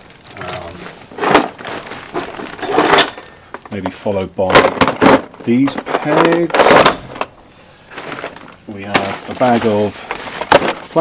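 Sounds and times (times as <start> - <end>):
gear rustling and clattering: 0.0 - 3.3, 7.9 - 11.0.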